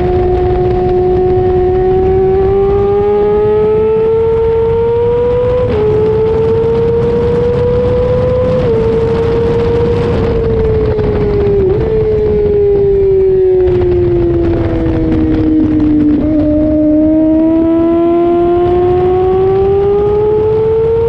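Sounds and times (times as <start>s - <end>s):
motorcycle engine at high revs: 0.0s - 21.0s
wind rush: 0.0s - 21.0s.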